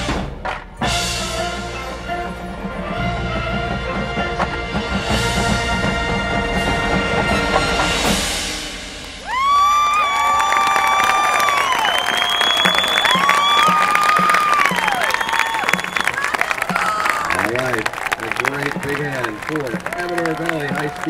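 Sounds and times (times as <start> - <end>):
marching band chord: 0.0 - 9.2, 11.9 - 21.0
crowd applause and cheering: 9.0 - 21.0
long whistles: 9.3 - 16.4.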